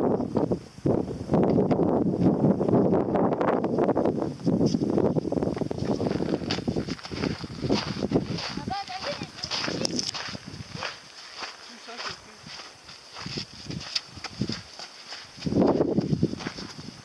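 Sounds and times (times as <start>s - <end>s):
wind rumble on microphone: 0.0s - 17.0s
footsteps scrambling over rock: 4.5s - 17.0s.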